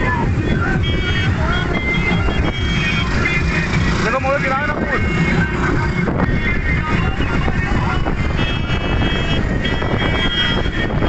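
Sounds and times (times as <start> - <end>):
motorcycle engines running: 0.0 - 11.0
wind buffeting microphone: 4.7 - 11.0.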